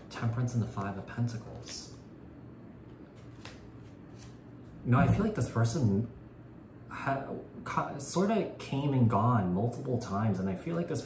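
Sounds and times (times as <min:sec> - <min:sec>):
man speaking: 0:00.0 - 0:02.0, 0:04.8 - 0:06.2, 0:06.9 - 0:11.0
cards flicking and sliding: 0:03.1 - 0:04.4.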